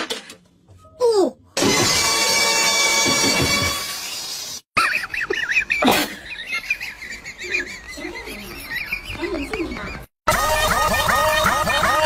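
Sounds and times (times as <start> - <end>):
music: 1.6 - 4.4, 10.3 - 12.0.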